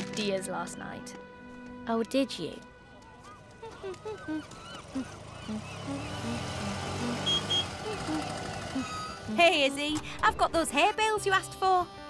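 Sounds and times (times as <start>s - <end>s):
tuk-tuk engine running: 3.1s - 11.2s.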